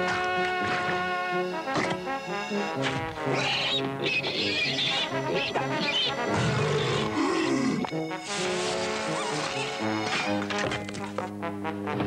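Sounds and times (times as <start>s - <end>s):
cartoon soundtrack music: 0.0s - 12.0s
animal-like voice wavering in pitch: 3.3s - 7.9s.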